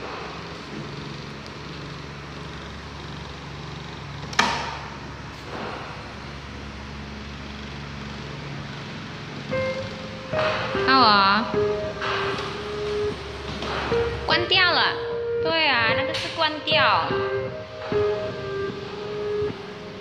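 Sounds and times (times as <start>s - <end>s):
steady low hum: 0.0s - 20.0s
hand slapping treadmill belt: 3.6s - 6.1s, 8.1s - 14.4s
faint background music: 9.5s - 20.0s.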